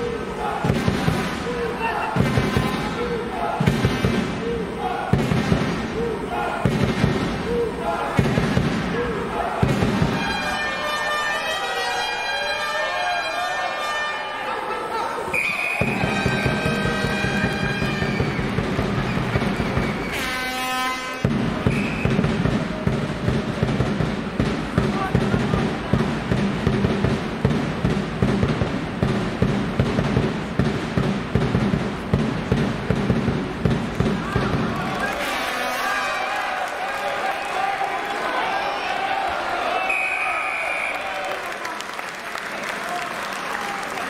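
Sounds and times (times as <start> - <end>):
voices: 0.0 - 5.2, 5.9 - 17.7
short high whistle: 15.3 - 16.2, 21.7 - 22.2, 39.8 - 41.2.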